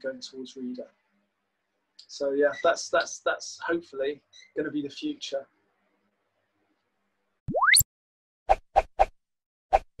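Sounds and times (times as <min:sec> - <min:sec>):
cartoon pop sound effects: 0:07.5 - 0:07.8.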